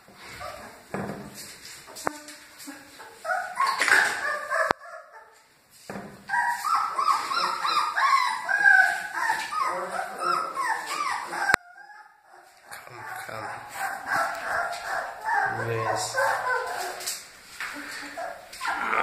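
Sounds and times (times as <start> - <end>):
puppies whimpering and squealing: 0.3 - 0.9, 2.2 - 5.5, 6.2 - 19.0.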